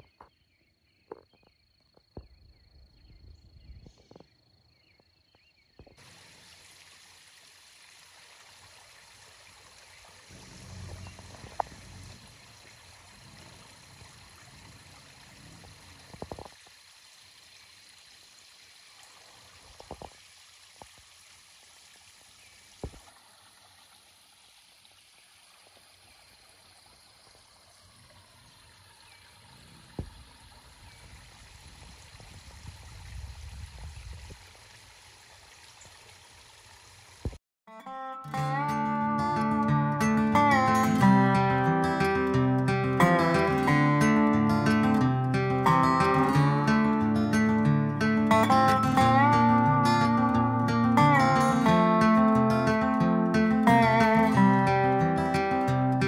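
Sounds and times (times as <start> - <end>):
creek trickling over rocks: 5.8 - 37.4, 38.4 - 56.0
acoustic guitar music: 10.3 - 12.2, 37.7 - 56.0.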